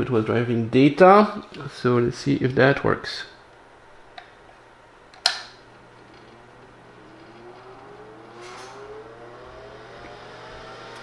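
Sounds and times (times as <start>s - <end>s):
cooling fan whine: 0.0s - 11.0s
steady low hum: 0.0s - 11.0s
power switch click: 5.1s - 5.6s.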